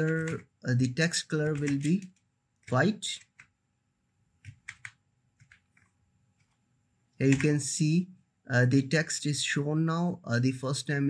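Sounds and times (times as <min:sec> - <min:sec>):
keyboard keystrokes: 0:04.4 - 0:06.6.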